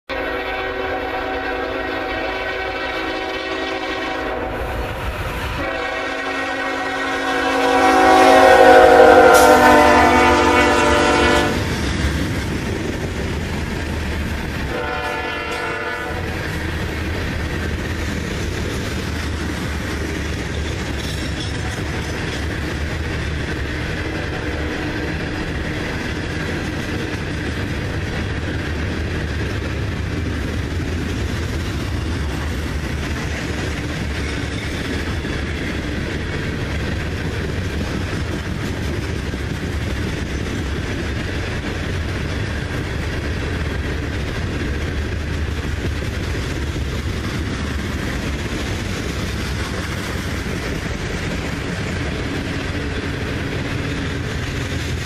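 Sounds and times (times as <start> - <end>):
locomotive air horn blasts: 0.1 - 11.7, 14.7 - 16.4
train cars rumbling and clacking: 0.1 - 55.0.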